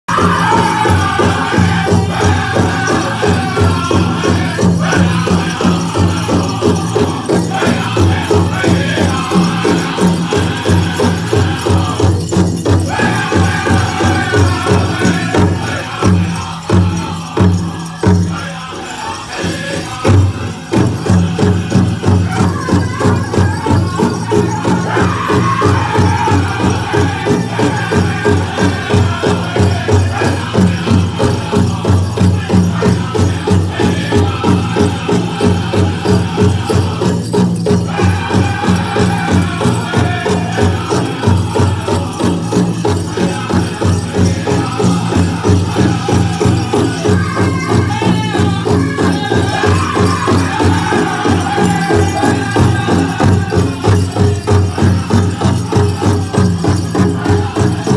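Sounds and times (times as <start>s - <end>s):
singers chanting high: 0.0s - 57.9s
drum beating fast: 0.1s - 57.9s.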